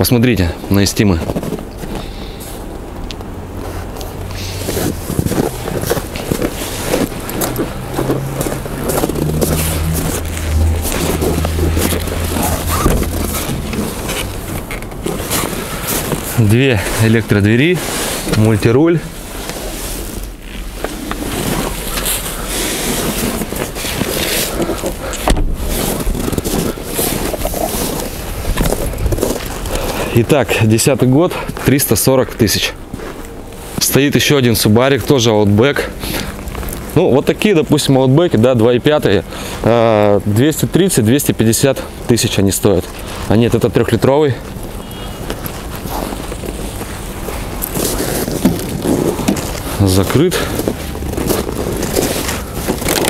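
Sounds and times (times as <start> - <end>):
vehicle engine rumbling: 0.0 - 53.0
microphone handling scraping: 0.6 - 2.9, 3.6 - 30.2, 44.4 - 53.0.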